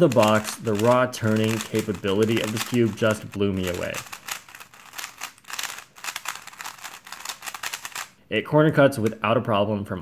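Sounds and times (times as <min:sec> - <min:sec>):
speedcube plastic clicks: 0:00.0 - 0:08.2.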